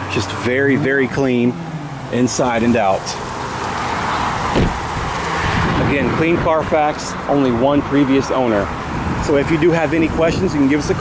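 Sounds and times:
car door closing thump: 4.4s - 5.1s.

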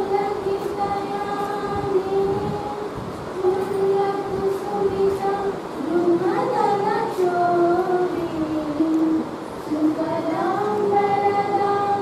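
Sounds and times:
group singing in unison: 3.4s - 12.0s.

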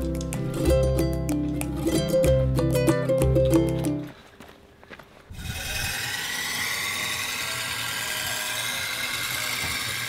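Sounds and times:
knife grinding on spinning wheel: 5.4s - 10.0s.

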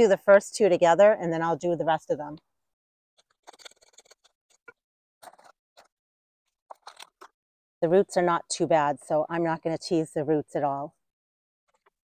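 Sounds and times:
woman speaking: 0.0s - 2.4s, 7.8s - 10.9s.

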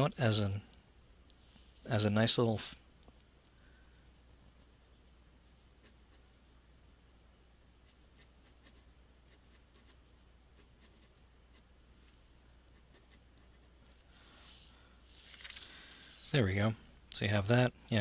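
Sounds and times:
pencil scratching on paper: 3.9s - 6.4s, 7.8s - 10.0s, 10.6s - 11.7s, 12.7s - 13.8s
paper rustling on desk: 14.2s - 16.4s.

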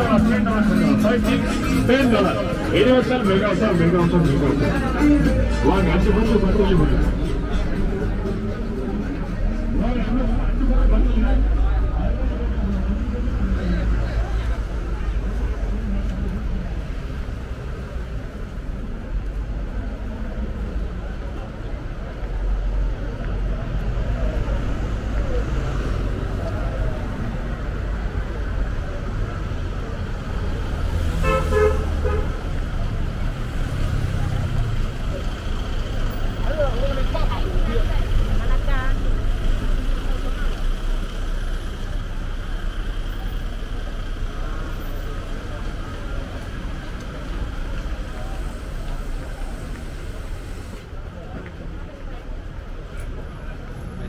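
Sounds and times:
background voices: 0.0s - 31.2s
low traffic rumble: 0.0s - 54.0s
vehicle horn honking: 31.2s - 32.4s.

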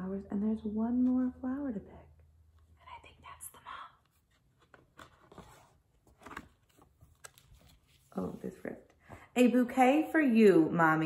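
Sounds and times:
faint whisper: 2.8s - 4.1s
paper page rustling: 4.2s - 8.6s.

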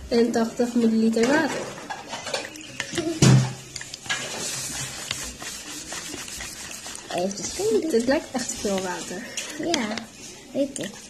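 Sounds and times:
plastic spoon stirring in bowl: 0.6s - 11.0s.

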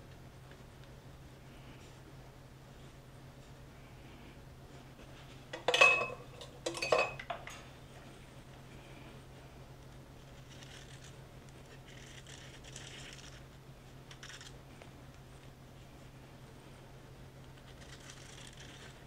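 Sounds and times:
spatula clinking metal bowl: 5.6s - 7.6s
spatula scraping frosting: 17.6s - 19.0s.

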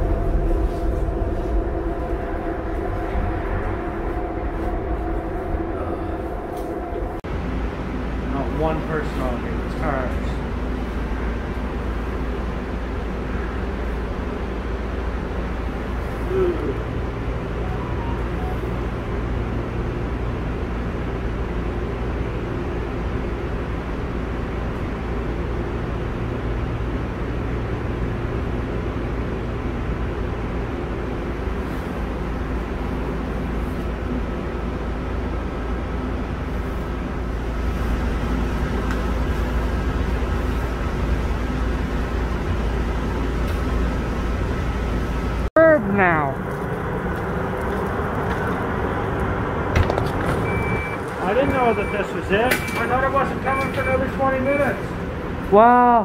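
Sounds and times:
faint whining tones: 0.0s - 20.2s
light rail car hum and rumble: 0.0s - 56.0s
short falling tone: 17.5s - 19.2s.

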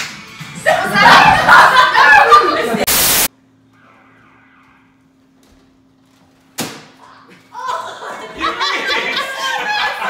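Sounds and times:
tv static hiss: 2.8s - 3.3s.

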